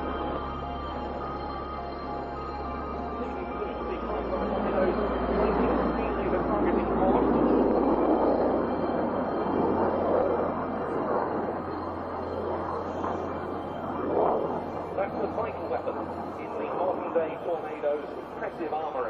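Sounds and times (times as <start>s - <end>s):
jet engines roaring: 0.0s - 19.0s
low hum: 0.0s - 19.0s.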